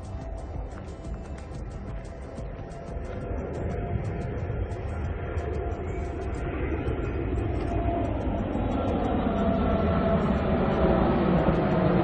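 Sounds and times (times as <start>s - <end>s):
jet airliner rumble overhead: 0.0s - 12.0s.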